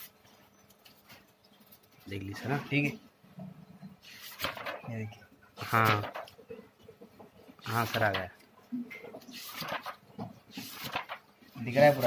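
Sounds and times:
hand rubbing paper on floor: 0:10.5 - 0:12.0.

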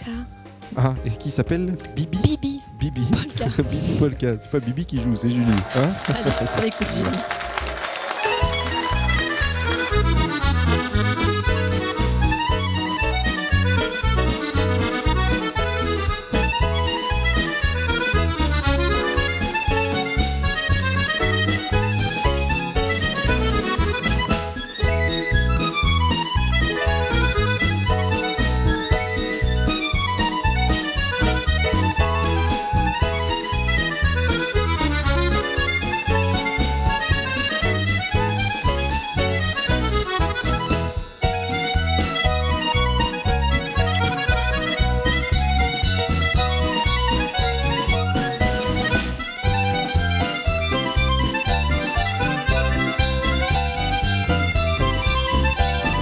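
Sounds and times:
accordion playing polka: 0:01.1 - 0:56.0.

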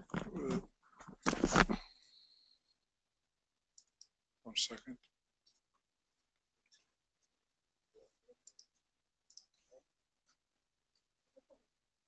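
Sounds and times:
faint computer mouse clicks: 0:08.4 - 0:09.6.

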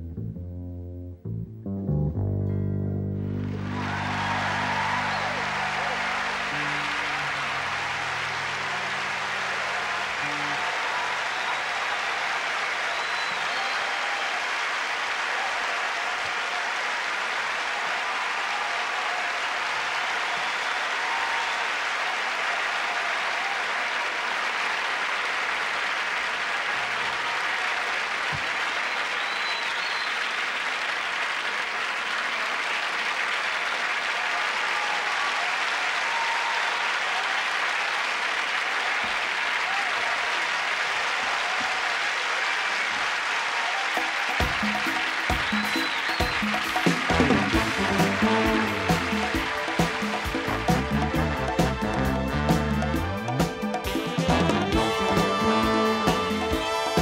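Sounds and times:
audience applauding: 0:03.2 - 0:57.0.

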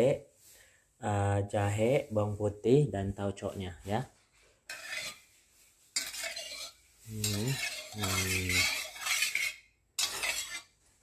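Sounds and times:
wok and utensils clattering: 0:04.7 - 0:05.3, 0:05.9 - 0:10.8.

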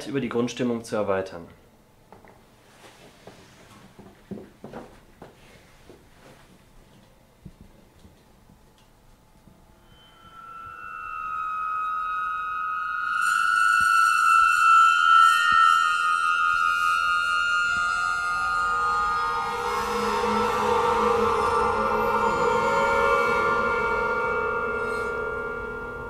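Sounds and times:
vibrating strings sustained tones: 0:09.3 - 0:26.0.

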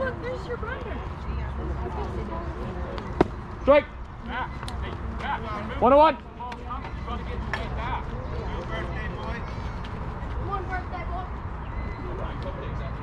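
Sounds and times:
distant people talking: 0:00.0 - 0:13.0.

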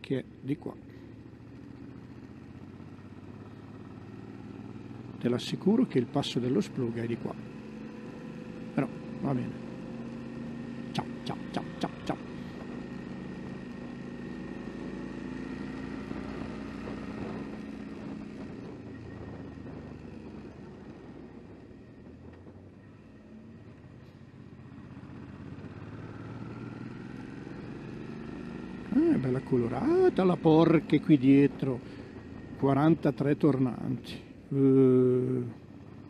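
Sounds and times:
motorcycle engine running: 0:00.0 - 0:36.0
wind noise: 0:16.8 - 0:22.7.

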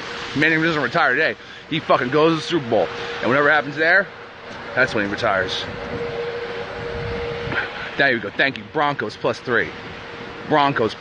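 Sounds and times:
outdoor street noise: 0:00.0 - 0:11.0.

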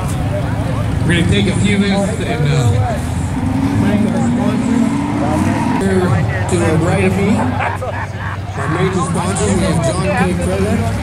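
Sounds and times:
faint voices: 0:00.0 - 0:11.0
vehicle engine rising in pitch: 0:00.8 - 0:10.1.

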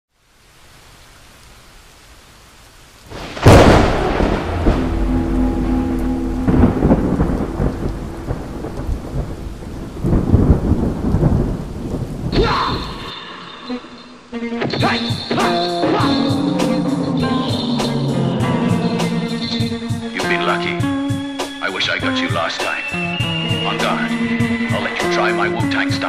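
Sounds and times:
faint hiss: 0:00.1 - 0:26.0
steady rain: 0:00.1 - 0:26.0
rolling thunder rumble: 0:03.1 - 0:13.1, 0:16.1 - 0:21.3
thunderclap: 0:03.1 - 0:13.1, 0:16.2 - 0:21.2.

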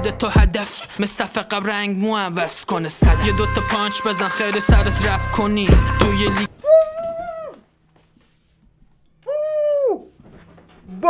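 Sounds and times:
man calling boo: 0:05.8 - 0:07.6, 0:09.3 - 0:10.1.

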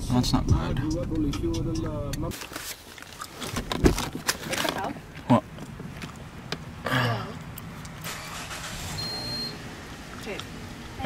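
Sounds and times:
car noise: 0:00.0 - 0:11.0
high electronic beep: 0:08.9 - 0:09.6.

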